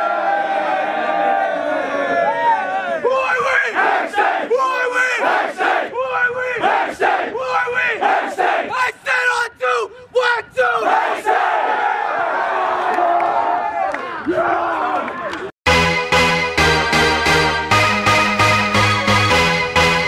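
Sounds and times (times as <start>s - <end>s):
group yell: 0.0s - 6.0s, 10.7s - 15.4s
young men chanting in unison: 3.4s - 8.8s, 10.6s - 12.2s.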